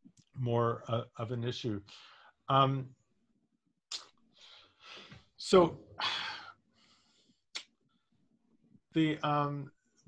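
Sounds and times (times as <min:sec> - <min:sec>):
faint breathing: 0:01.9 - 0:02.4, 0:04.3 - 0:05.3, 0:06.0 - 0:08.2.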